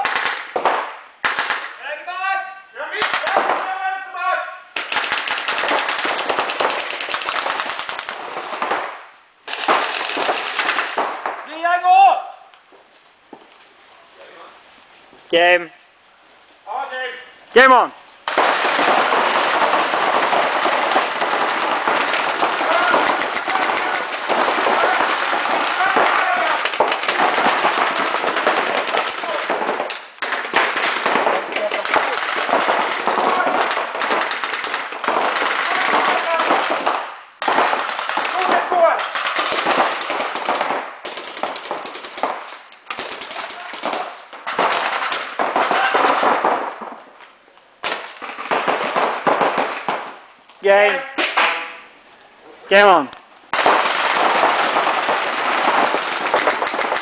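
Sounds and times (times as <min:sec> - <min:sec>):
players shouting: 0:22.4 - 0:26.9.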